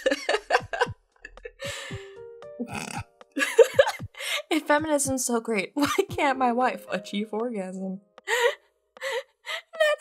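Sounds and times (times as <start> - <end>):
woman laughing: 0.0 - 2.0, 3.4 - 4.4, 9.6 - 10.0
woman gasping: 1.6 - 2.2, 4.1 - 4.5, 8.3 - 9.9.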